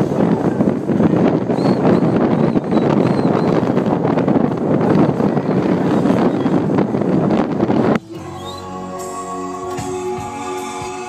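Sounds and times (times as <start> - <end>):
wind buffeting microphone: 0.0 - 8.7
car wind and road noise: 0.0 - 10.7.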